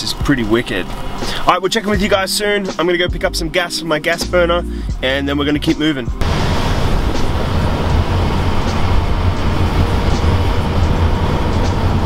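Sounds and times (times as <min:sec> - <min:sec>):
road and engine noise: 0:00.0 - 0:03.0, 0:06.2 - 0:12.0.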